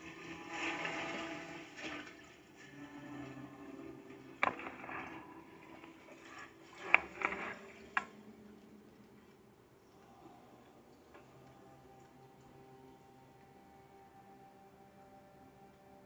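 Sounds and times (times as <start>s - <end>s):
sustained music from television: 0.0s - 16.0s.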